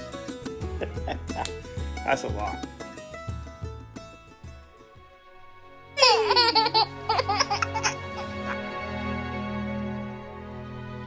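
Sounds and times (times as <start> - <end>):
soft background music: 0.0 - 11.0
baby laughing loudly: 6.0 - 8.6.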